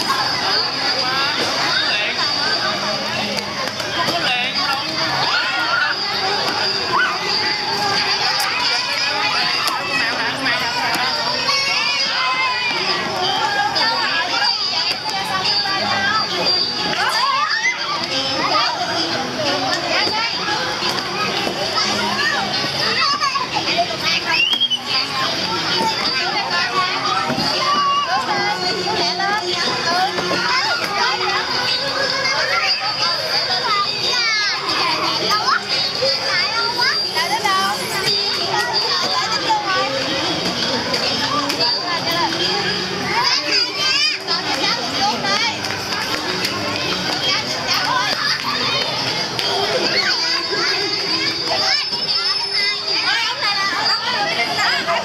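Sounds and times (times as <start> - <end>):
children chattering: 0.0 - 55.0.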